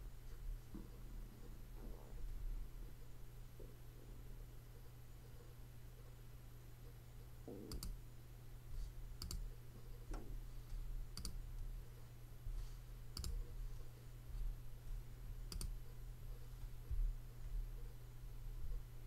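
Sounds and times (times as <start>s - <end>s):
low electrical hum: 0.0s - 19.0s
computer mouse clicks: 7.7s - 8.0s, 9.2s - 9.5s, 11.1s - 11.4s, 13.1s - 13.4s, 15.5s - 15.8s.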